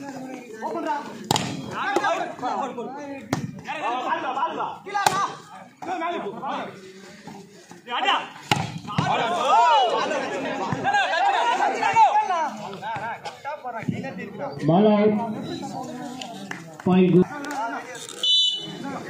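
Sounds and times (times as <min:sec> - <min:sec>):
players and spectators calling out: 0:00.0 - 0:19.0
hands slapping volleyball: 0:01.3 - 0:01.6, 0:08.5 - 0:09.2.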